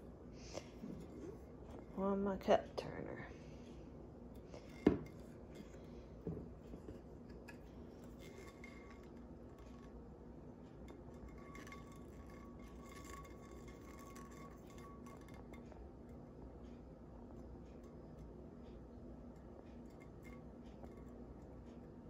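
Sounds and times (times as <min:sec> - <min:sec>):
low steady hum: 0:00.0 - 0:22.0
tumbler knocking: 0:04.4 - 0:10.0, 0:10.7 - 0:16.4, 0:17.2 - 0:21.6.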